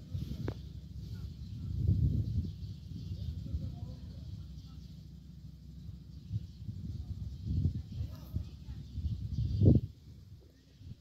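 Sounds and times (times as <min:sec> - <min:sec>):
low rumbling on microphone: 0:00.0 - 0:11.0.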